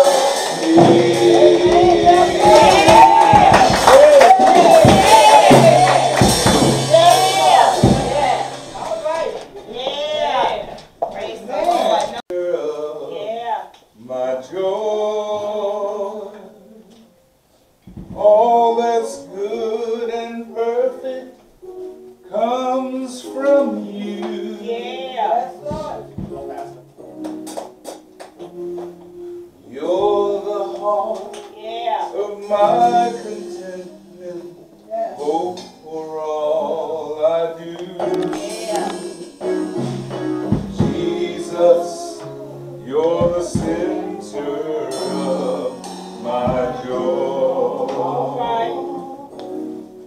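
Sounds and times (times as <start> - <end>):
man singing: 0.0 - 8.6, 12.3 - 13.3, 14.0 - 17.1, 18.2 - 21.4, 22.2 - 26.3, 29.6 - 49.4
held instrumental chords: 0.0 - 12.2, 21.6 - 50.0.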